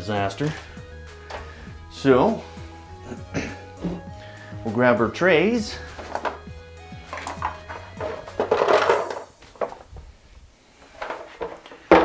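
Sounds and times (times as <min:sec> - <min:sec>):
scraping and rustling: 0:05.8 - 0:12.0
plastic trays clattering: 0:05.9 - 0:10.1, 0:10.8 - 0:12.0.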